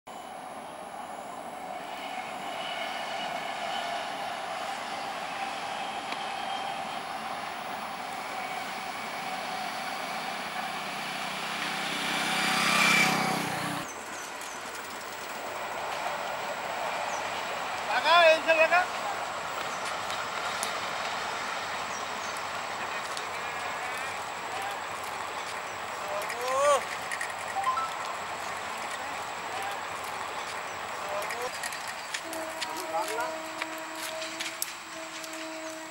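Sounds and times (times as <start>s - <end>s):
quiet steady rail noise: 0.1s - 35.9s
train rumbling on rails: 0.1s - 35.9s.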